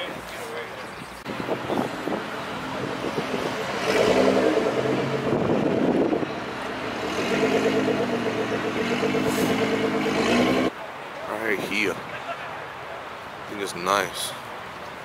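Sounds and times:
car engine revving: 0:01.4 - 0:10.7.

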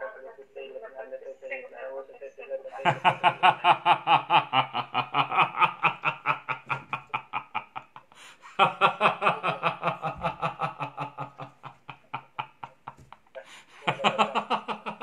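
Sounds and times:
man laughing hard: 0:02.8 - 0:15.0.

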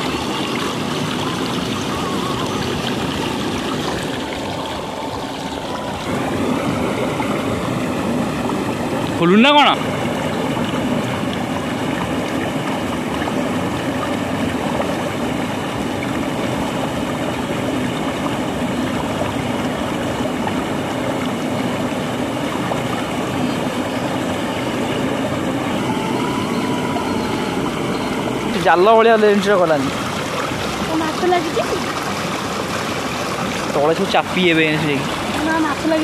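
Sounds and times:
water rushing down channel: 0:00.0 - 0:36.0.

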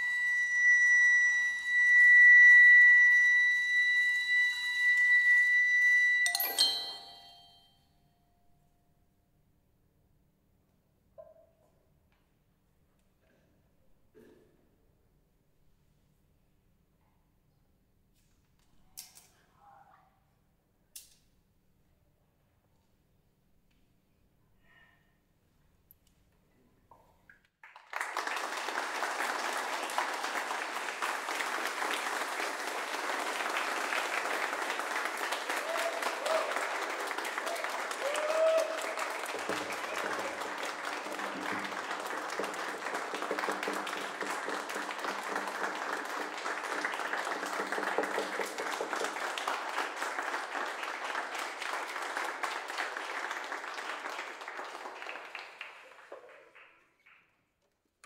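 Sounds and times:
audience applauding: 0:27.6 - 0:57.2.

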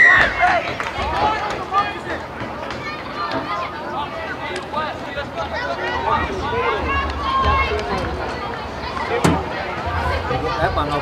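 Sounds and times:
calls and chatter of people: 0:00.0 - 0:11.0.

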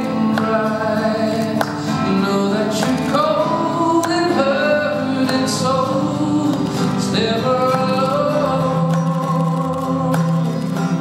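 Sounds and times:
acoustic guitar: 0:00.0 - 0:11.0
man singing into microphone: 0:00.0 - 0:11.0.

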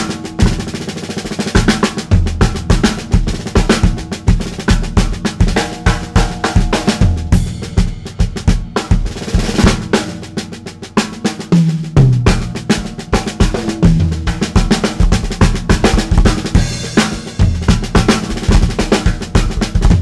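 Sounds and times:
snare drum strokes and rolls: 0:00.0 - 0:20.0
bass drum: 0:01.4 - 0:20.0.

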